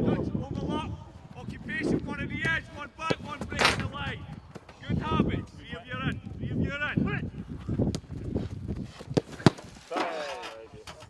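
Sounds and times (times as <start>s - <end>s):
football thuds: 1.8s - 5.2s, 7.3s - 10.0s.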